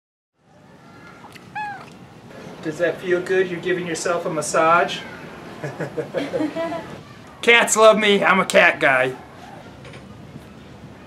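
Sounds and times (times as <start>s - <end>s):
faint background noise: 0.4s - 11.0s
cat meowing: 1.0s - 2.0s.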